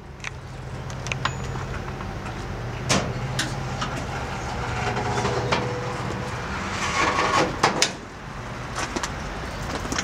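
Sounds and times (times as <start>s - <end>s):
gate creaking: 3.8s - 8.0s.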